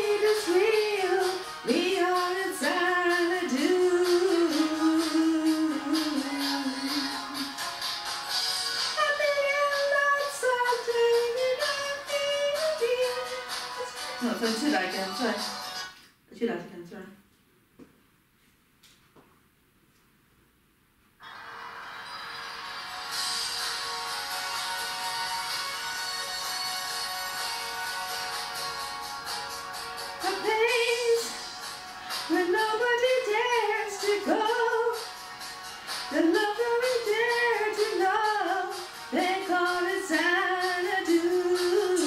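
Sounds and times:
woman singing: 0.0s - 7.6s, 8.8s - 15.6s, 30.2s - 35.2s, 36.1s - 42.0s
karaoke backing track: 0.0s - 16.7s, 21.2s - 42.0s.

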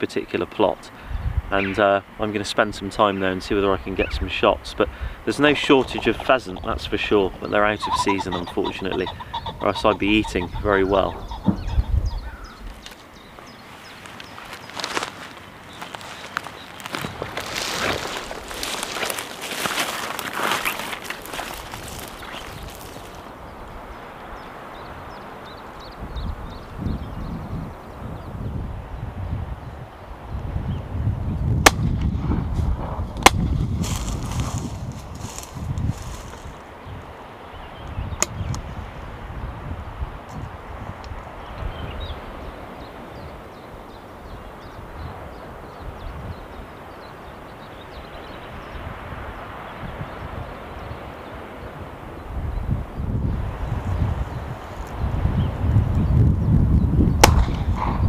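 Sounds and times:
wind buffeting microphone: 0.9s - 47.0s, 47.6s - 58.0s
footsteps through dry grass: 12.6s - 23.4s, 32.6s - 36.8s
sharp loud cracks: 31.6s - 32.1s, 33.2s - 33.5s, 57.2s - 57.8s.

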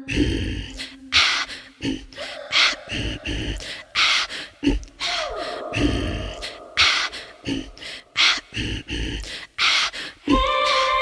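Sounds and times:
woman breathing rhythmically: 0.0s - 11.0s.

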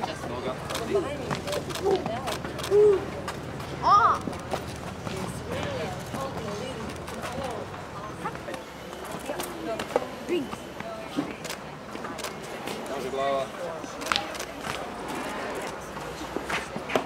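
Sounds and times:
indistinct chatter: 0.0s - 17.0s.

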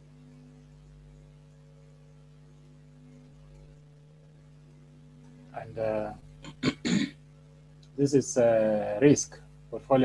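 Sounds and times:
low electrical hum: 0.0s - 10.0s
man clearing his throat: 6.5s - 7.2s.

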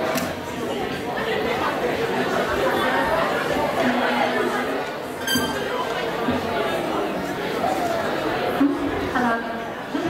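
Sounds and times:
crowd chattering in a hall: 0.0s - 10.0s.

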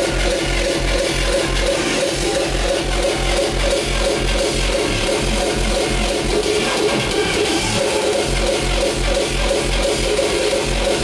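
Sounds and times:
hardcore techno over pa: 0.0s - 11.0s
heavy fast kick drum: 0.0s - 11.0s.

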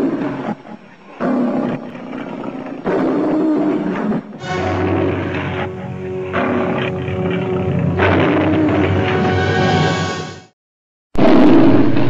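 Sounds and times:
lion roaring: 0.0s - 9.6s, 11.2s - 12.0s.

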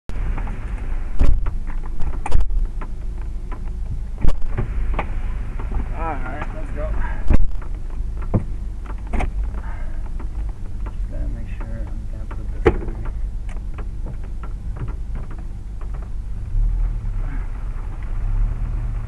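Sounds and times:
heavy rain on car roof: 0.1s - 19.0s
sharp raindrop impacts: 0.1s - 19.0s.

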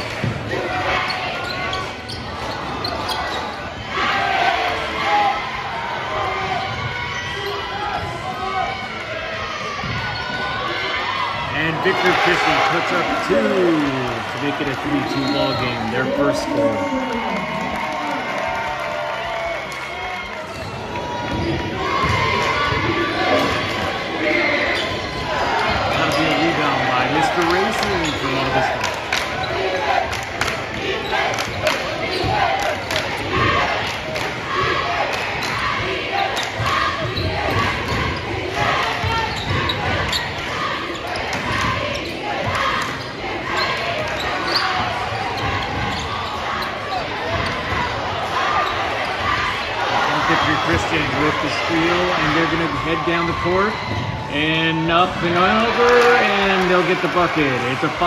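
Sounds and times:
shouts and chatter: 0.0s - 58.0s.

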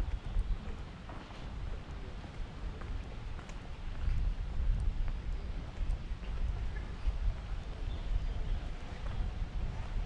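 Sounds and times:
faint footsteps on path: 0.0s - 10.0s
wind buffeting microphone: 0.0s - 10.0s.

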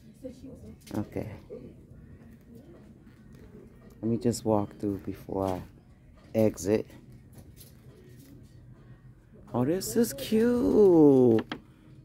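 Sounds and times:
faint soft noises: 0.0s - 12.0s.

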